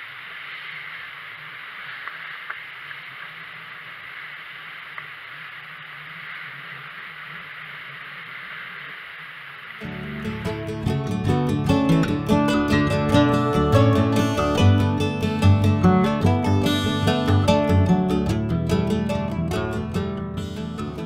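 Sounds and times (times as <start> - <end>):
faint ticks: 1.8 - 4.2, 4.8 - 9.8
acoustic guitar music: 9.8 - 21.0.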